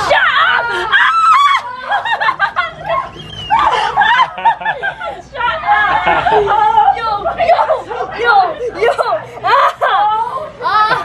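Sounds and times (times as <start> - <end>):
people squealing and laughing: 0.0 - 11.0.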